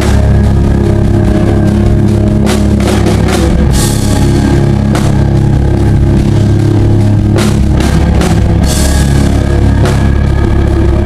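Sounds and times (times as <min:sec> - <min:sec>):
drum hit: 0:00.0 - 0:11.0
sustained guitar and bass chord: 0:00.0 - 0:11.0.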